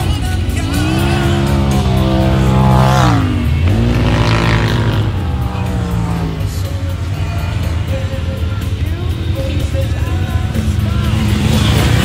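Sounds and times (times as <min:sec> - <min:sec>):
utility vehicle engine running: 0:00.0 - 0:12.0.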